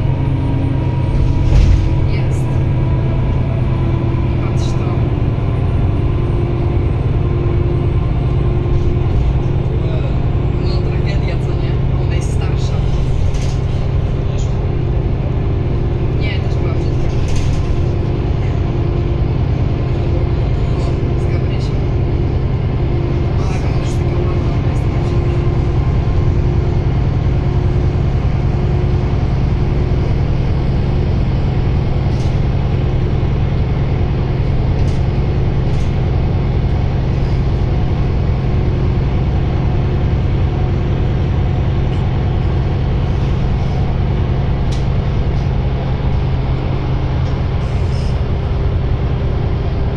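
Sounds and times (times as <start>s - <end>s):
bus diesel engine droning: 0.0s - 49.9s
road noise: 0.0s - 49.9s.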